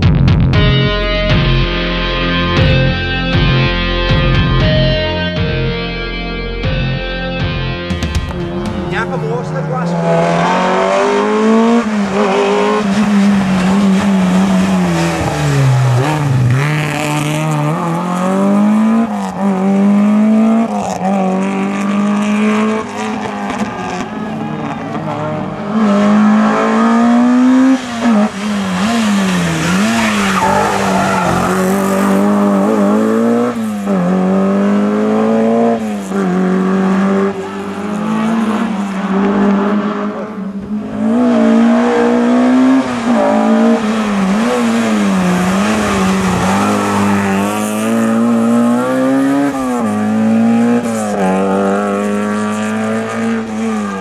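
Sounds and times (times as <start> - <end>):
rally car engines revving: 8.1 - 54.0.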